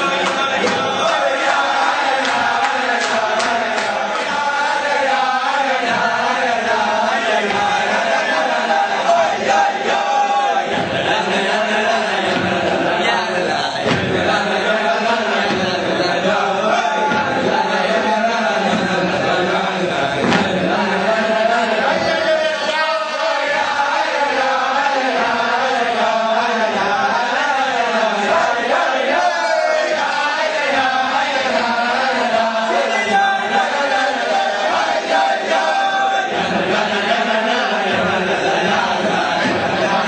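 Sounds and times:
male voices chanting in unison: 0.0s - 40.0s.

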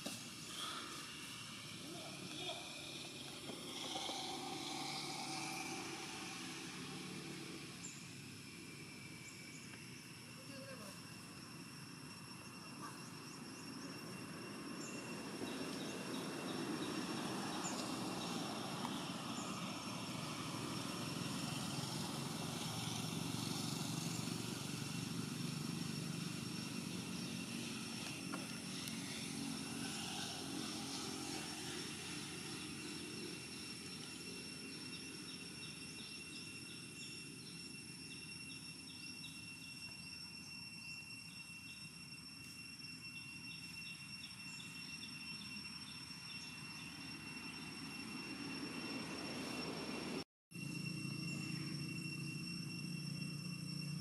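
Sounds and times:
high insect drone: 0.0s - 54.0s
rapid insect chirping: 0.0s - 54.0s.

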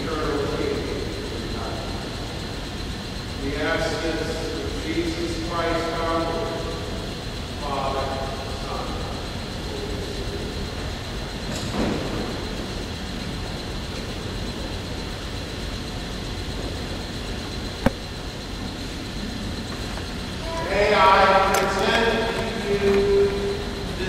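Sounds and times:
low rumble and hiss: 0.0s - 24.0s.

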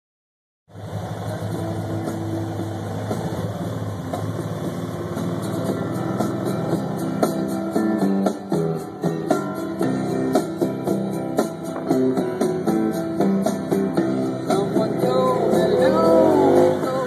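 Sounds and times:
car engine humming: 0.7s - 17.0s
guitar music: 0.7s - 17.0s.

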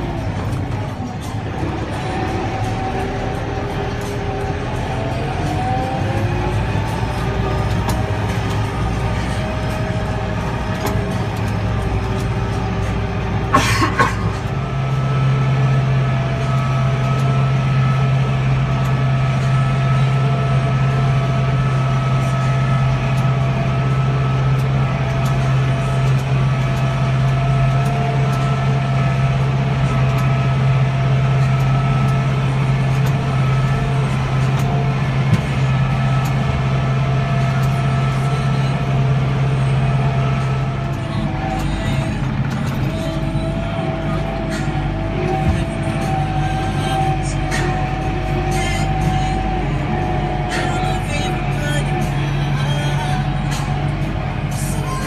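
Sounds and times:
noisy clatter: 0.0s - 55.0s
tractor engine running: 0.0s - 55.0s.

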